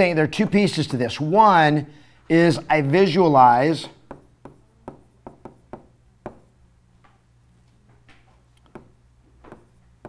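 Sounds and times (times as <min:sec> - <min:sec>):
stylus tapping on touchscreen: 0:04.1 - 0:06.5.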